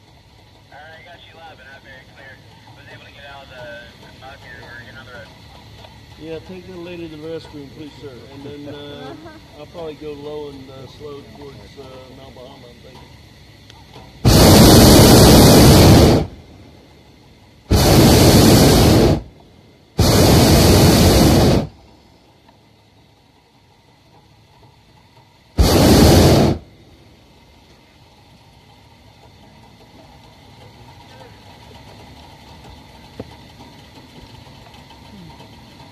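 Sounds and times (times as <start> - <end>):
propane burner blasts: 0.0 - 35.9.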